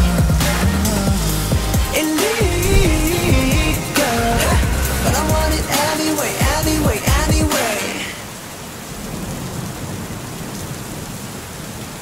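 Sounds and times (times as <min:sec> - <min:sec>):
steady rain: 0:00.0 - 0:12.0
low rumble of thunder: 0:02.5 - 0:05.6.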